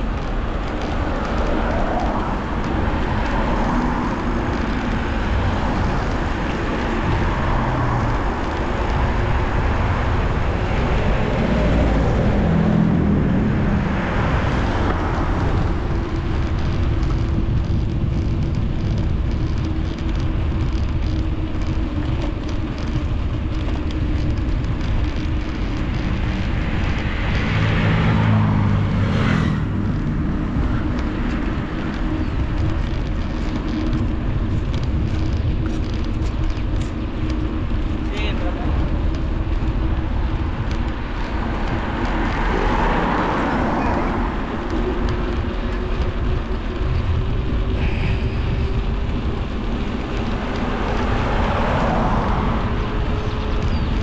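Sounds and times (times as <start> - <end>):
motor vehicles passing: 0.0 - 54.0
wind rushing over microphone: 0.0 - 54.0.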